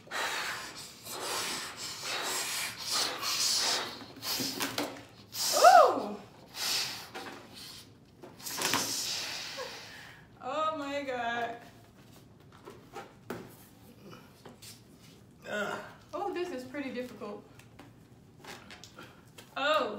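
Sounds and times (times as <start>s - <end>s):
puffs of breath blowing balloons: 0.0s - 10.3s.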